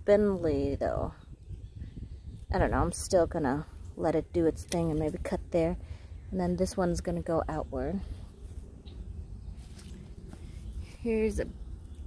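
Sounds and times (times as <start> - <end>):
footsteps on pine-straw mulch: 9.6 - 11.1.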